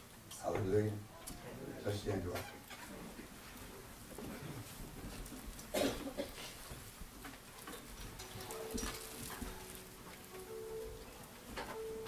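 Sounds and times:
quiet held music notes: 0.0s - 12.0s
clothing rustling: 8.1s - 11.9s.

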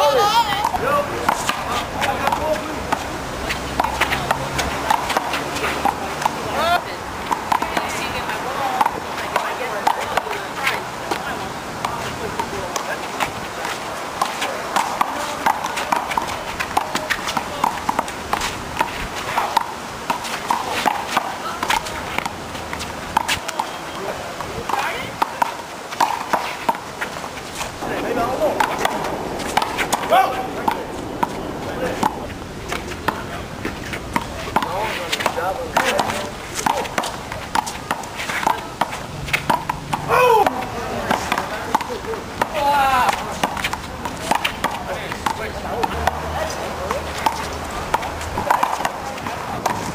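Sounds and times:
players shouting: 0.0s - 26.6s, 27.8s - 49.9s
handball slaps and knocks: 0.6s - 6.4s, 24.7s - 26.9s, 34.2s - 46.2s, 46.8s - 49.9s.

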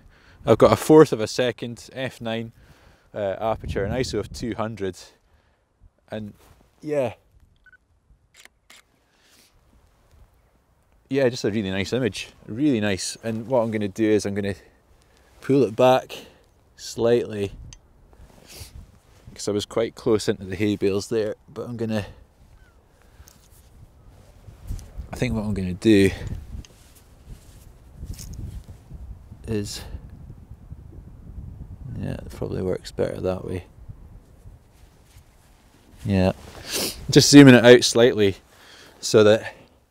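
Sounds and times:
camera shutter clicks: 8.4s - 8.9s
faint hiss: 18.1s - 19.8s, 34.8s - 39.9s.

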